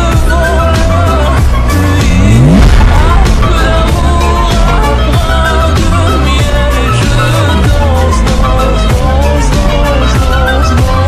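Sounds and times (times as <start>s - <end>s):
music with a beat: 0.0s - 11.0s
rising pitch sweeps: 1.9s - 6.1s.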